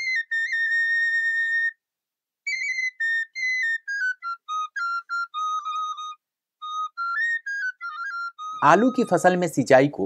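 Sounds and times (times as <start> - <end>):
high wind instrument melody: 0.0 - 1.8, 2.4 - 9.8.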